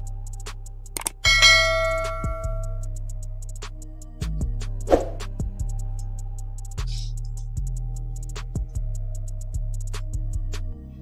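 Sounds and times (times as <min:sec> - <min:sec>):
background music with steady beat: 0:00.0 - 0:11.0
bell strike ringing: 0:01.2 - 0:02.8.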